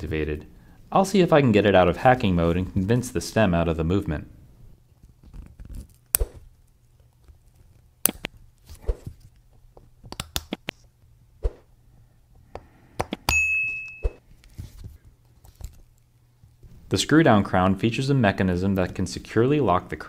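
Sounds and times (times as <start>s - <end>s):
metal tool ringing: 13.3s - 14.2s.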